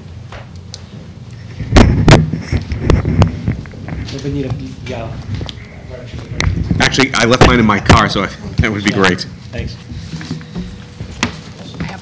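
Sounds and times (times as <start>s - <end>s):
microphone knocks and thumps: 1.6s - 4.6s, 6.1s - 8.8s, 9.9s - 12.0s.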